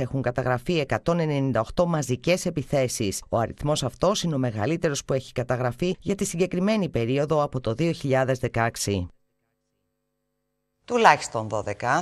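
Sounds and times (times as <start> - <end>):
woman speaking: 10.9 - 12.0.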